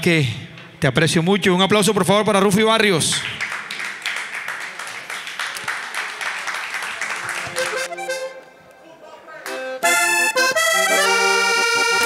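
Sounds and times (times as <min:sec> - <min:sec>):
audience applause: 0:03.2 - 0:08.2
button accordion playing chords: 0:07.6 - 0:08.6, 0:09.5 - 0:12.0.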